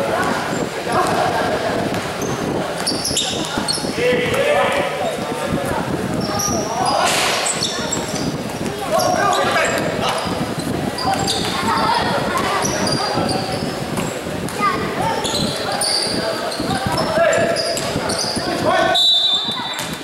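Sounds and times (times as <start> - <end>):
sneakers squeaking: 0.0 - 20.0.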